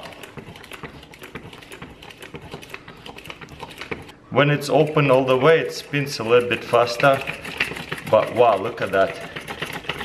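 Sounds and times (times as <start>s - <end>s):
batter churning: 0.0s - 10.0s.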